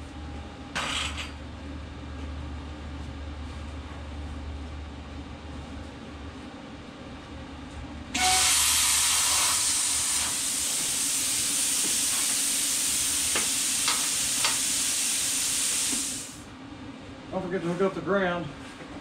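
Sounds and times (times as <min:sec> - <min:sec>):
plasma torch air hiss: 0:08.2 - 0:16.4.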